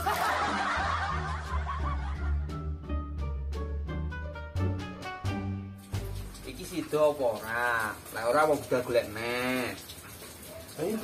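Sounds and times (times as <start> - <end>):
people laughing: 0.0 - 2.6
background music: 0.0 - 7.4.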